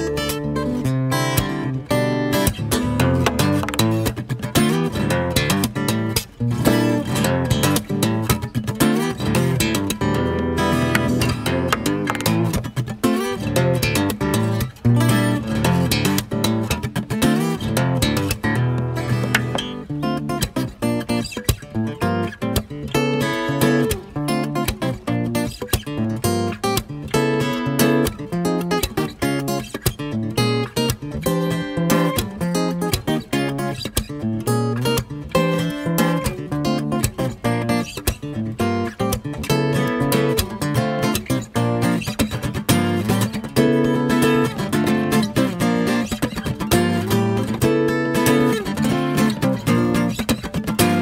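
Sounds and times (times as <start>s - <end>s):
fingerstyle acoustic guitar: 0.0s - 51.0s.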